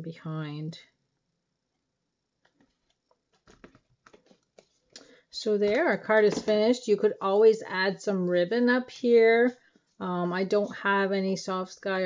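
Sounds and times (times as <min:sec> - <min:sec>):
paper card taps and rustles: 0:02.4 - 0:06.8.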